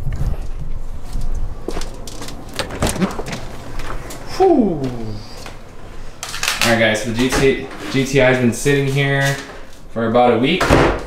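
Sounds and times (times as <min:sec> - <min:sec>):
footsteps: 0:00.0 - 0:09.9.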